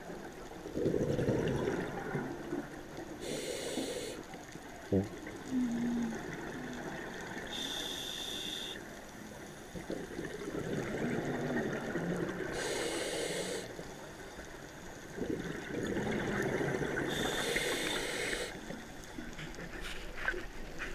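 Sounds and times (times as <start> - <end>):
exhaled bubbles rumbling: 0.6 - 3.1, 5.0 - 7.5, 9.7 - 12.7, 15.0 - 17.4
regulator inhale hiss: 3.2 - 4.3, 7.5 - 8.9, 12.5 - 14.0, 17.1 - 18.8.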